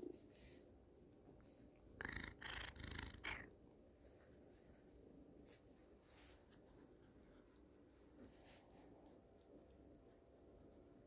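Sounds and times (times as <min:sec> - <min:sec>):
cat purring: 0:01.5 - 0:03.6.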